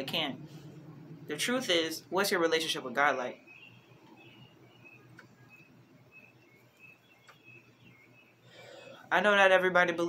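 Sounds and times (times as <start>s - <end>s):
soft clicks: 5.1s - 5.7s.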